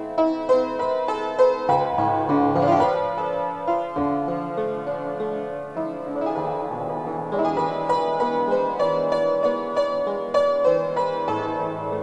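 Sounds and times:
upright piano melody: 0.0 - 12.0.

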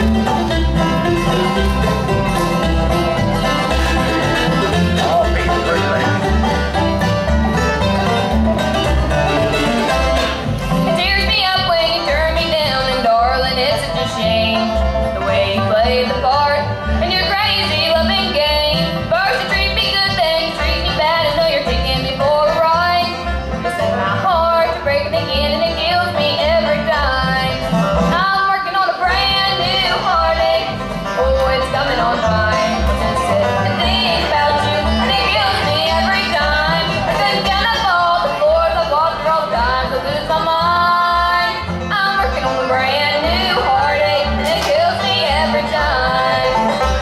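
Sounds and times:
bluegrass band playing: 0.0 - 47.0.

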